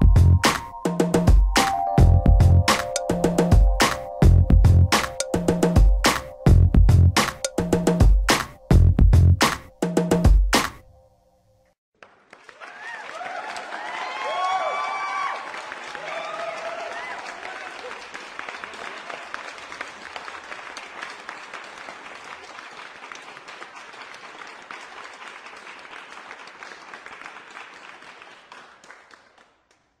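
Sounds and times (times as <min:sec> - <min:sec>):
crowd applause: 0:12.0 - 0:29.5.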